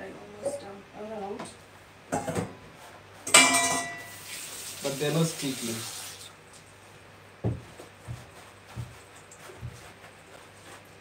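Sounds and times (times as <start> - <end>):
metal pot clanking: 3.3 - 4.1.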